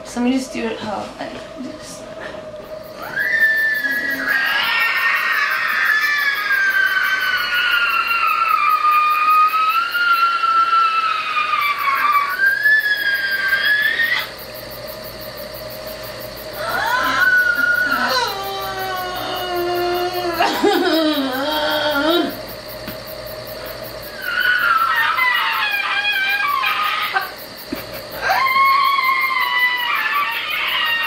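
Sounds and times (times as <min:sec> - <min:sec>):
woman squealing whine: 0:02.9 - 0:14.4, 0:16.6 - 0:22.4, 0:24.1 - 0:27.4, 0:28.2 - 0:31.0.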